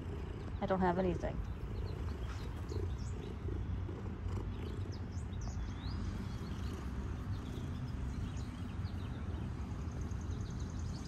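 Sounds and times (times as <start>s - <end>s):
cat purring: 0.0s - 10.2s.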